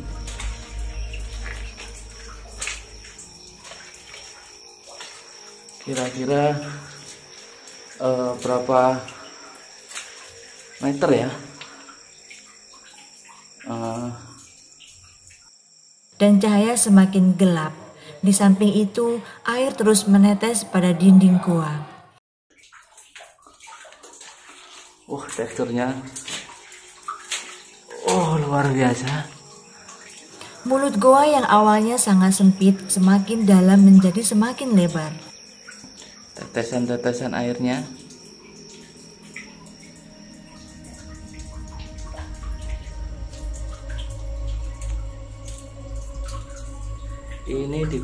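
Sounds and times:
water dripping in a cave: 0.0s - 19.7s, 22.5s - 48.0s.

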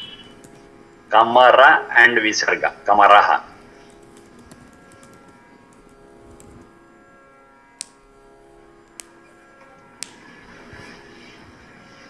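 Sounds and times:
faint steady hum: 0.0s - 12.0s
sharp clicks: 3.8s - 6.7s, 7.8s - 8.2s, 8.8s - 9.4s.

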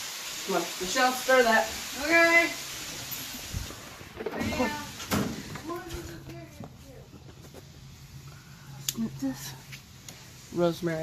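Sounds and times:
woman speaking: 4.3s - 5.0s, 5.6s - 7.1s.

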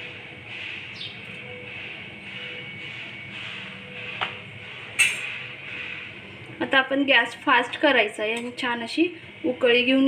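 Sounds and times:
bird chirp: 0.9s - 1.3s.

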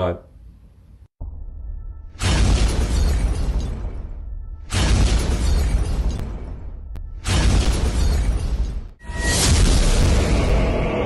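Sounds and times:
crash sound effects: 2.1s - 11.0s.

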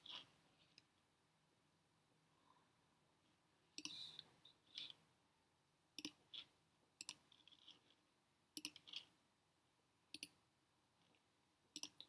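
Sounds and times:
computer mouse clicks: 3.8s - 5.0s, 6.0s - 7.8s, 8.6s - 9.1s, 10.1s - 10.4s, 11.8s - 12.0s.

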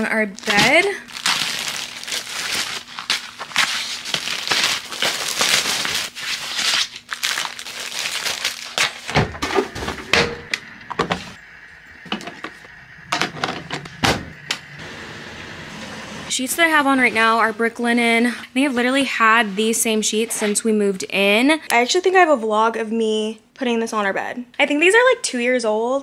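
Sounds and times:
plastic packaging crinkling: 0.2s - 9.7s.

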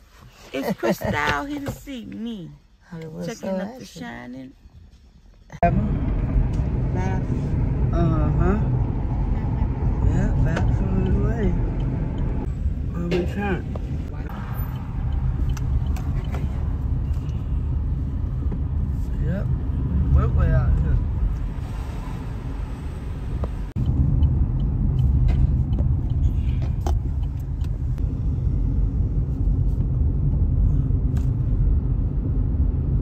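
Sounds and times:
car engine and road noise: 0.0s - 33.0s.

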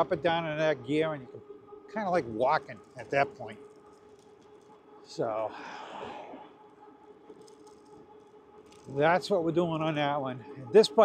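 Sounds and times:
electric bike hum and whine: 0.0s - 11.0s
road noise: 2.4s - 9.8s.

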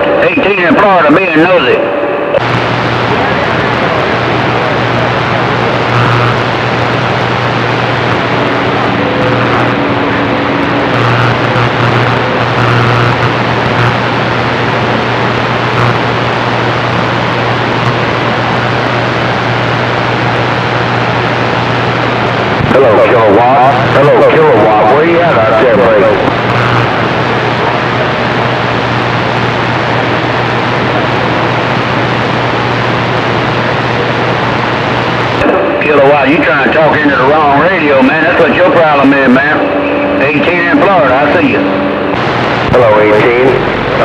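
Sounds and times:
radio static hiss: 0.0s - 44.0s
low hum: 1.9s - 35.9s.

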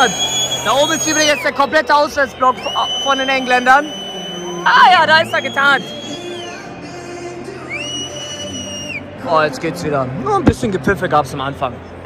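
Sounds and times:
shrill whistle: 0.0s - 6.7s, 7.6s - 9.1s
stadium crowd din: 0.0s - 12.0s.

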